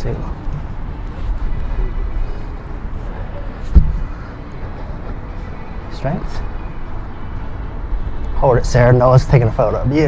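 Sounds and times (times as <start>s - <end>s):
steady low rumble: 0.0s - 10.0s
dull low thump: 3.7s - 4.2s.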